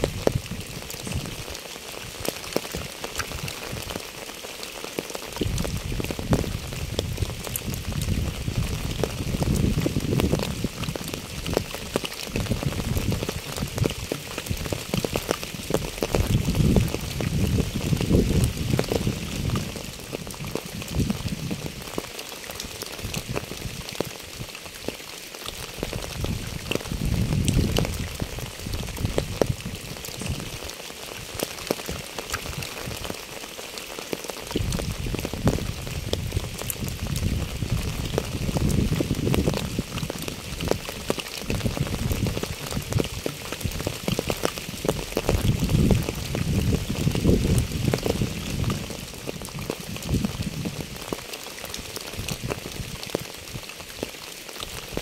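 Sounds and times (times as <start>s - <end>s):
rain on asphalt and puddles: 0.0s - 55.0s.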